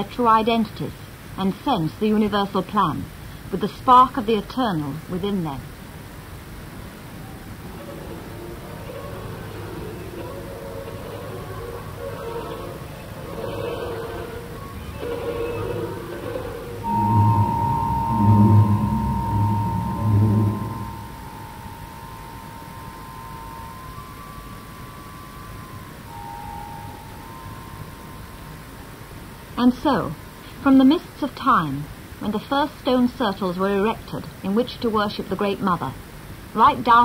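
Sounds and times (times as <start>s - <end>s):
loud low notes: 16.8s - 22.8s
long held high tone: 16.8s - 29.6s
mid-pitched musical notes: 16.8s - 29.6s.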